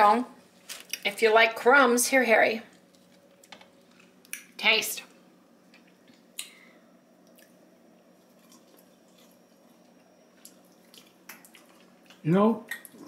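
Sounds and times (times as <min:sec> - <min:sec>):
low steady hum: 0:00.0 - 0:13.0
chewing crumbly meringue: 0:02.7 - 0:04.5, 0:07.3 - 0:13.0.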